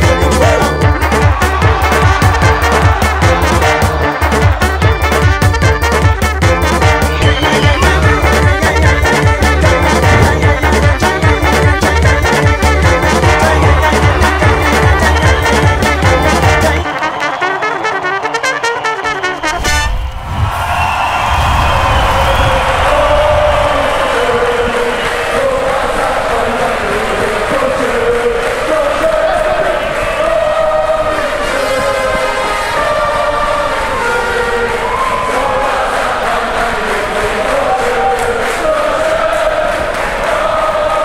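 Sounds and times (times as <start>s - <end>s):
drums: 0.0s - 16.8s
brass band music: 0.0s - 20.1s, 25.4s - 35.0s.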